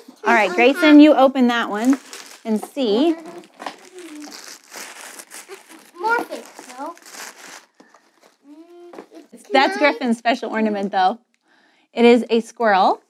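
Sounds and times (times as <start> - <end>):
paper wrapping crinkling: 1.5 - 9.3.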